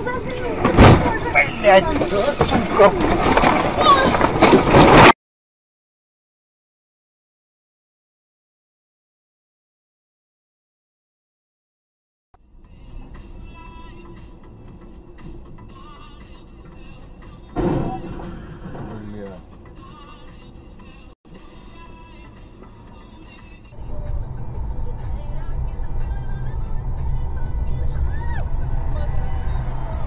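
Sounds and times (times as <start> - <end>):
voices in a car: 0.0 - 3.0, 15.6 - 30.0
music in a car: 12.4 - 30.0
sudden loud burst: 17.6 - 18.9
steady low rumble: 23.6 - 30.0.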